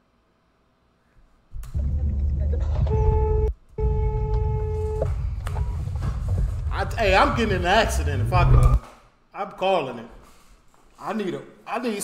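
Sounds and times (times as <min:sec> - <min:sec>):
road noise inside car: 0:03.8 - 0:08.8.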